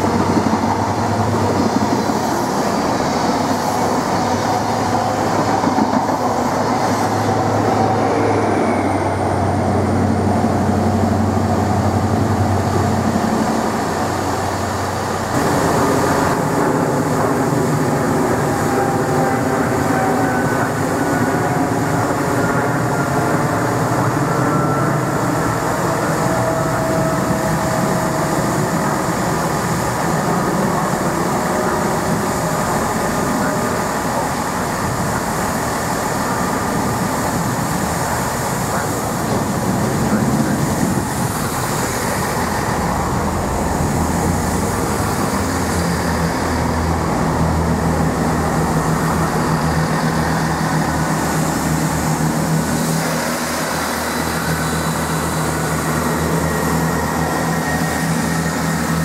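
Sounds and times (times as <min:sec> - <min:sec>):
diesel train engine drone: 0:00.0 - 0:59.0
train approaching: 0:00.0 - 0:59.0
train passing with engine hum: 0:00.0 - 0:59.0.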